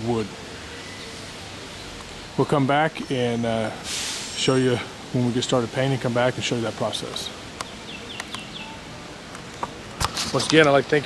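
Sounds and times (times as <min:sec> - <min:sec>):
outdoor background noise: 0:00.0 - 0:11.0
bird chirping: 0:00.5 - 0:04.8, 0:07.2 - 0:08.9.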